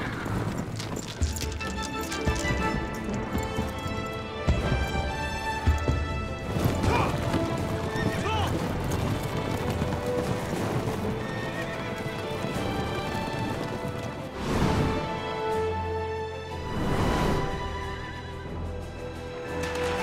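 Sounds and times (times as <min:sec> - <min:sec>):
horse hoofbeats: 0:00.0 - 0:15.8.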